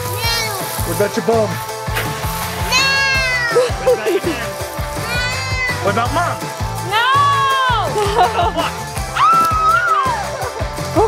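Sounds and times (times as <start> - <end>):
toddler squealing: 0.0 - 0.8, 2.6 - 4.0, 5.0 - 6.1
background music: 0.0 - 11.0.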